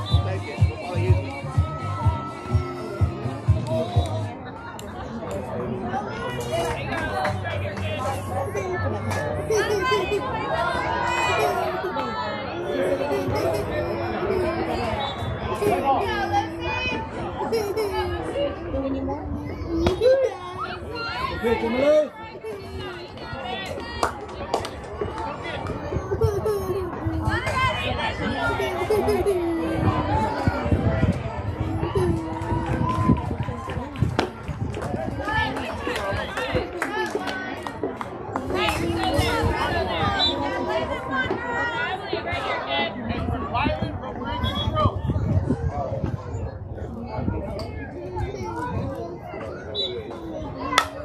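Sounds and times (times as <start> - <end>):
crowd chattering and calling out: 0.0 - 51.0.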